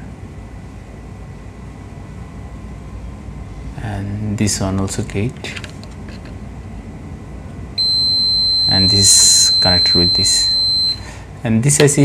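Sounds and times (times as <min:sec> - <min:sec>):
faint thin high tone: 0:07.8 - 0:11.1.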